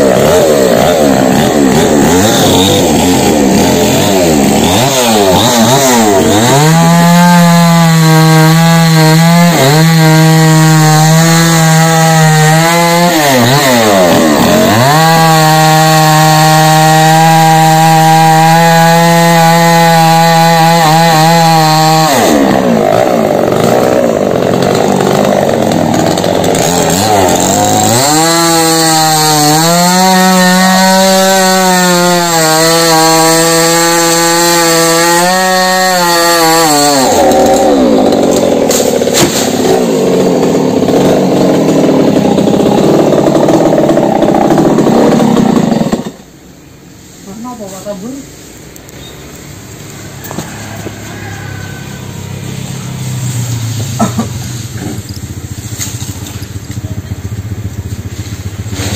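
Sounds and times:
chainsaw cutting wood: 0.0s - 46.5s, 52.4s - 58.9s.

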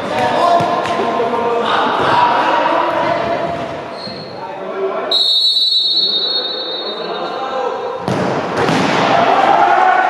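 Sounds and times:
players' voices in sports hall: 0.0s - 10.0s
referee's whistle blast: 5.1s - 7.4s.

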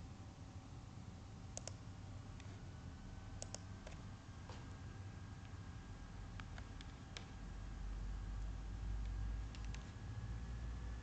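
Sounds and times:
low room hum: 0.0s - 11.0s
computer mouse clicking: 1.5s - 2.6s, 3.4s - 4.1s, 6.3s - 7.4s, 8.4s - 10.0s.

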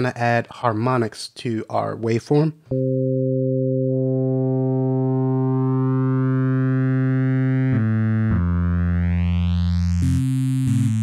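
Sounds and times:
held synthesizer note: 2.7s - 10.0s.

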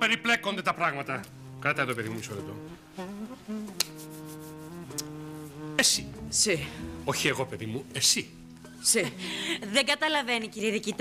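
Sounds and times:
low buzzy pitched tone: 1.3s - 9.8s.

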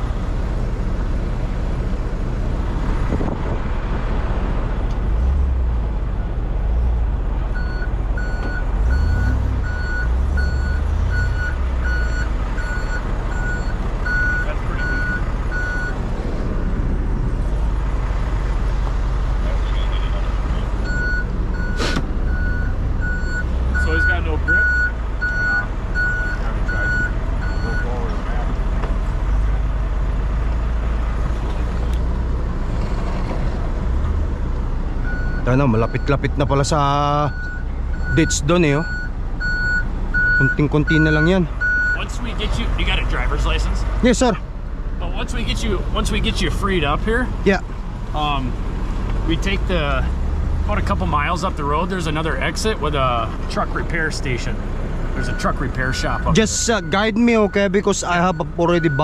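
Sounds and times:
truck engine idling: 4.3s - 32.7s, 33.6s - 59.0s
backup alarm beeping: 37.3s - 42.0s.

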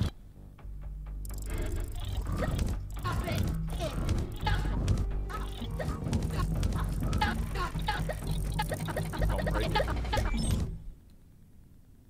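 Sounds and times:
man laughing: 7.2s - 10.3s.

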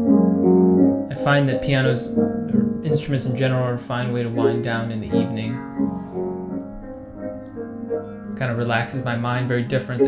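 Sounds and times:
slow upright piano: 0.0s - 10.0s.

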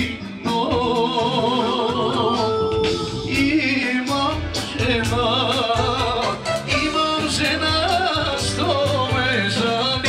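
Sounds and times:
low musical accompaniment: 0.0s - 10.0s
person singing with heavy vibrato: 0.0s - 10.0s.

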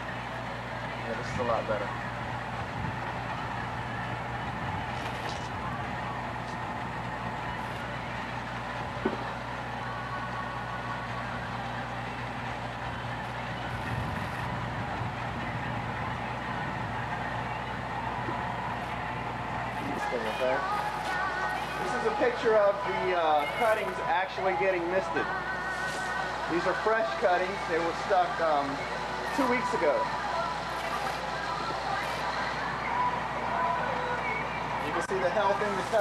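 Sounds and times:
machine hum with hiss: 0.0s - 36.0s.

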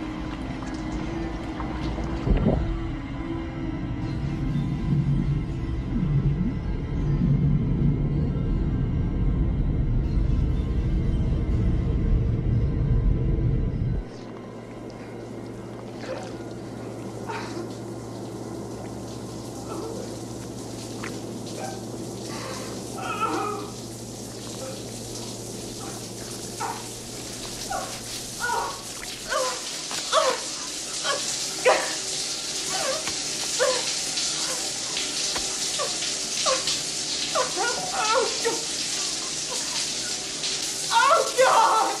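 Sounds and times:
low machinery hum: 0.0s - 41.6s
low rumble: 0.1s - 17.2s
shower water spraying: 14.9s - 42.0s.

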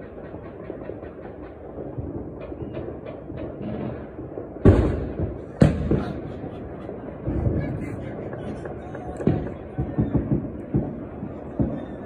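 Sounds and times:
fireworks bangs echoing: 0.0s - 12.0s
rumble of distant blasts: 0.0s - 12.0s.

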